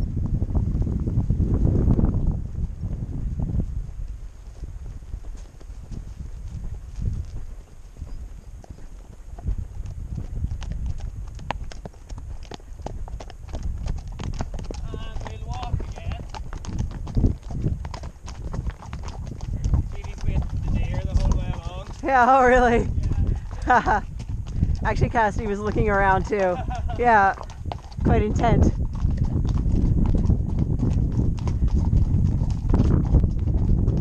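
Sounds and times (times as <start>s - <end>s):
horse hooves clip-clopping on stony track: 0.0s - 34.0s.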